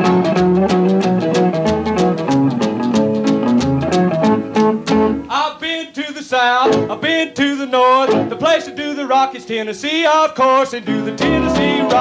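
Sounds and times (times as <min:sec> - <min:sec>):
walking bass line: 0:00.0 - 0:05.3
picked guitar: 0:00.0 - 0:12.0
person singing with vibrato: 0:05.2 - 0:12.0.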